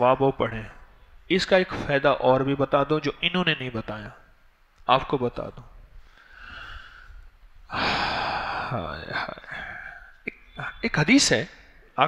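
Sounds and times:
man sighing: 7.7s - 8.9s.

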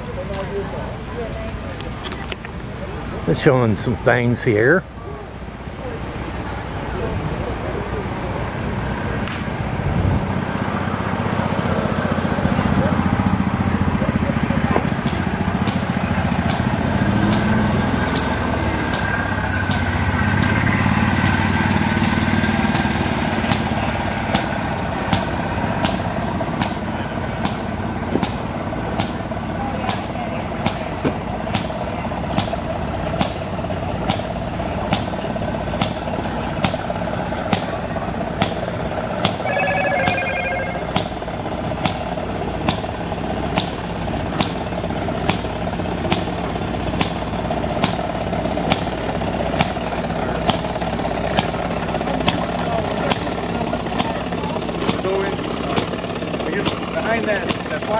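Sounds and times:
engine running hum: 4.9s - 57.9s.

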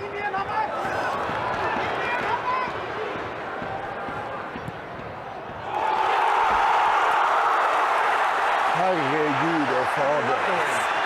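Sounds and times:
stadium crowd roaring: 0.0s - 11.0s.

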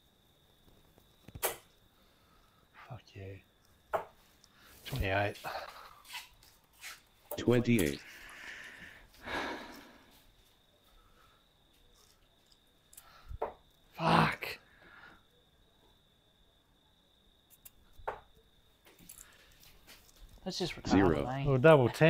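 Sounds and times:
short breaths: 8.0s - 10.2s, 14.7s - 15.3s
brief grunt: 20.9s - 21.2s.

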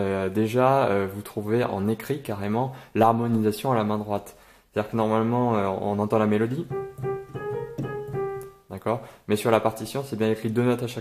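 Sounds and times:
digital piano melody: 6.4s - 8.7s.

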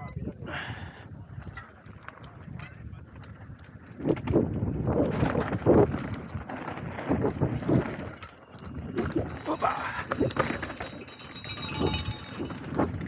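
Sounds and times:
wind rumbling on microphone: 0.0s - 13.0s
bike tyres on loose earth: 0.5s - 13.0s
bike rattling over bumps: 1.3s - 13.0s.

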